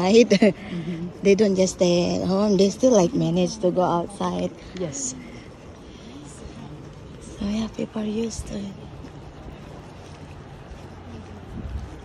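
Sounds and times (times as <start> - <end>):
wind on microphone: 5.5 - 12.0.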